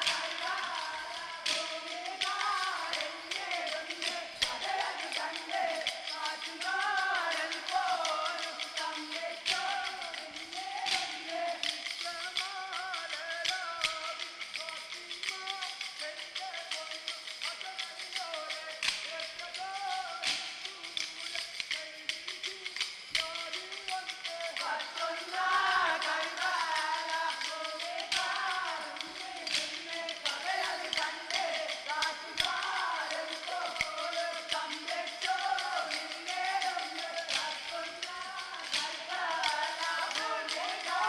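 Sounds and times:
person singing: 0:00.0 - 0:41.0.

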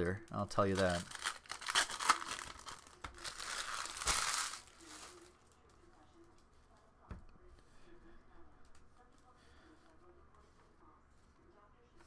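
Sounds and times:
foil wrapper crinkling: 0:00.4 - 0:05.7.

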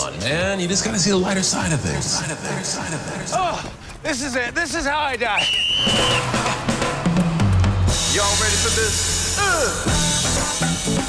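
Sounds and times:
drum kit strikes: 0:05.8 - 0:08.8
bass line: 0:05.8 - 0:11.0.

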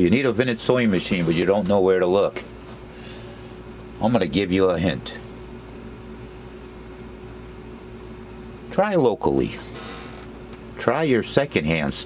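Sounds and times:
room tone hum and hiss: 0:00.0 - 0:12.0.

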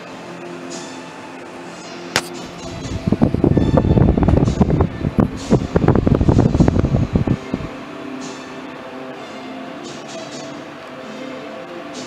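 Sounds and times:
faint background music: 0:00.0 - 0:12.0
microphone handling rumble and knocking: 0:02.6 - 0:07.7.

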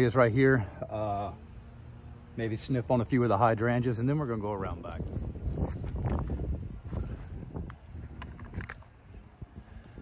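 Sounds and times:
low wind rumble: 0:00.0 - 0:10.0
footsteps on grass and mulch: 0:04.5 - 0:08.6.

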